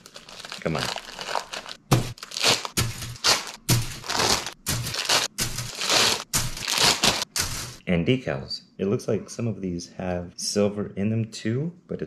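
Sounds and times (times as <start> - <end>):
plastic bag crinkling: 0.0 - 7.8.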